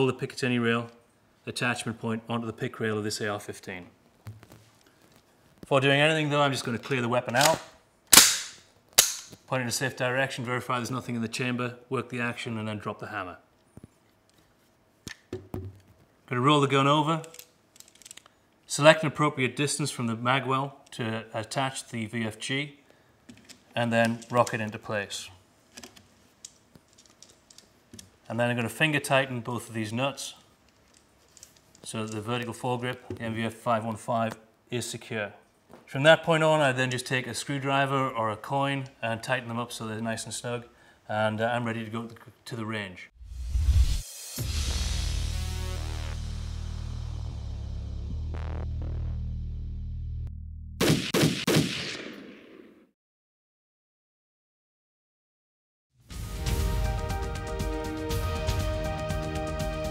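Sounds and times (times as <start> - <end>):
low electronic music drone: 44.5 - 50.6
loud gunshot-like bangs: 50.8 - 52.8.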